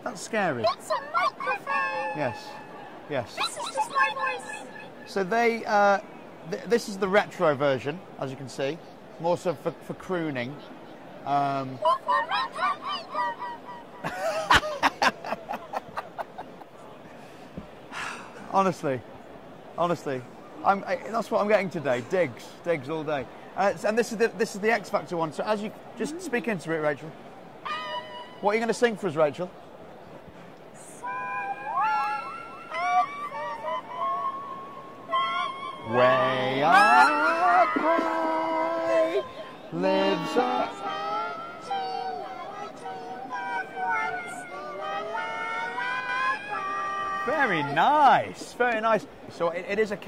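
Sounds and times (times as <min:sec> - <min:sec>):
person laughing: 0:14.0 - 0:16.6
woman singing into toy microphone: 0:40.3 - 0:47.3.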